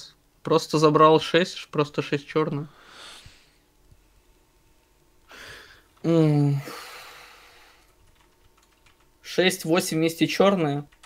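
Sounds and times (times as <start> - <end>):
faint keyboard typing: 7.6 - 11.0.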